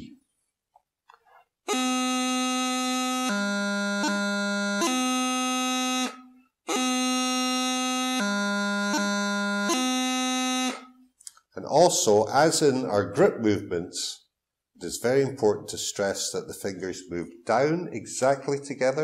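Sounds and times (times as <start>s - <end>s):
bagpipe practice chanter playing: 1.7s - 11.1s.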